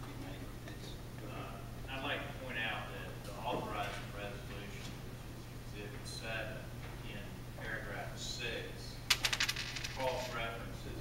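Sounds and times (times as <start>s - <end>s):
rattle of sharp clicks: 9.1s - 10.4s.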